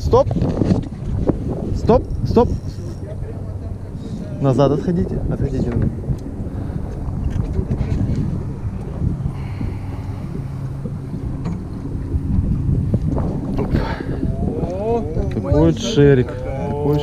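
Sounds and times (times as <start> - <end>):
boat engine droning: 0.0 - 17.0
wind buffeting microphone: 0.0 - 17.0.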